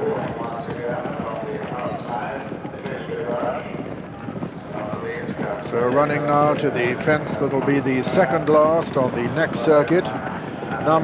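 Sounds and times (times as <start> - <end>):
faint voices: 0.0 - 11.0
horses galloping on turf: 0.0 - 11.0.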